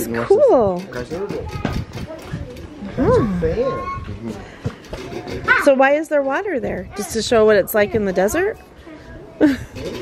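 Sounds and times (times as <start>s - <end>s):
people talking: 5.5s - 9.6s.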